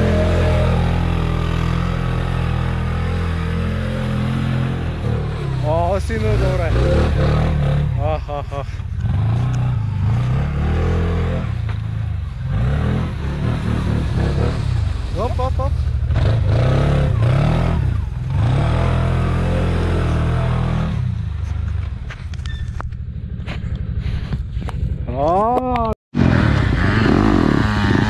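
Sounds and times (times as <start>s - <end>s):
quad bike engine revving: 0.0s - 21.1s, 26.2s - 28.0s.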